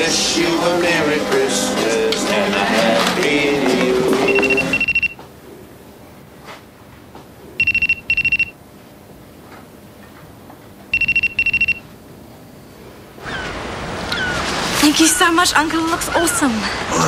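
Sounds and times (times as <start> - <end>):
cordless telephone ringing: 4.3 - 5.2, 7.6 - 8.5, 10.9 - 11.8.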